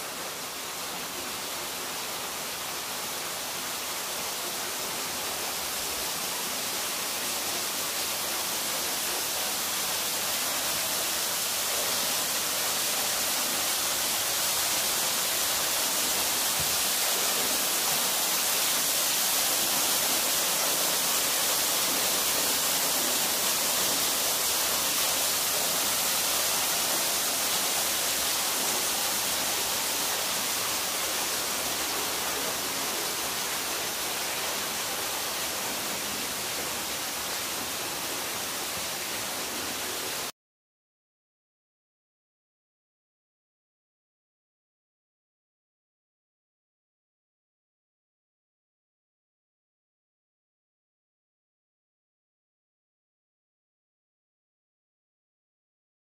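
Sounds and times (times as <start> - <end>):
small waterfall splashing onto rocks: 0.0 - 40.2.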